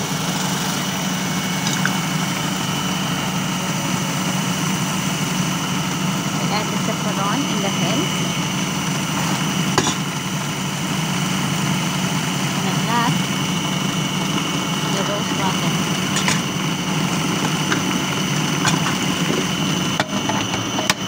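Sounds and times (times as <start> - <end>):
food processor motor running: 0.0 - 21.0.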